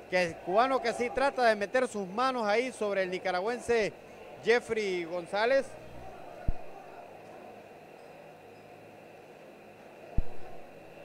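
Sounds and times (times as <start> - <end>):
faint arena room tone: 0.0 - 11.0
short dull thump: 10.2 - 10.6.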